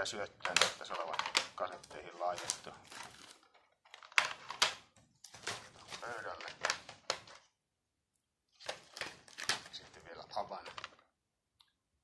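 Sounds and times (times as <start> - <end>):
plastic cassette cases clacking: 0.4 - 7.5.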